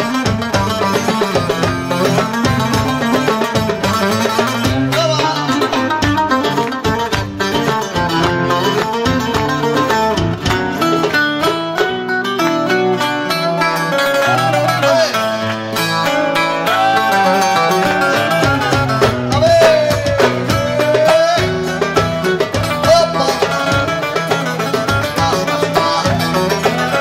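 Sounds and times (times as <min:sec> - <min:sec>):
frame drum beat: 0:00.0 - 0:12.0, 0:16.6 - 0:27.0
acoustic guitar: 0:00.0 - 0:27.0
plucked long-necked lute: 0:00.0 - 0:27.0.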